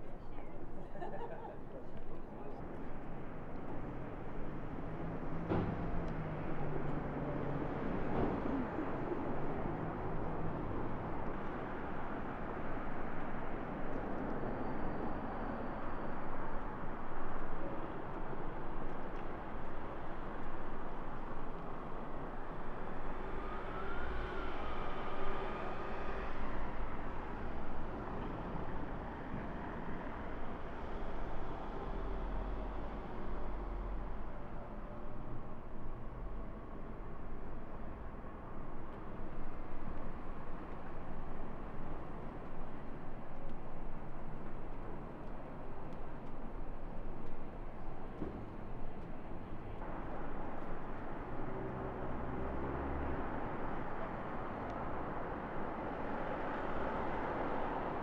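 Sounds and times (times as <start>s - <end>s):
city street traffic rumble: 0.0s - 58.0s.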